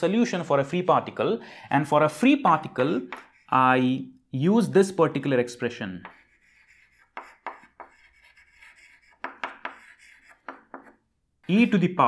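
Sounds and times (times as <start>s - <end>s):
chalk writing on chalkboard: 2.7s - 3.8s, 6.0s - 11.8s.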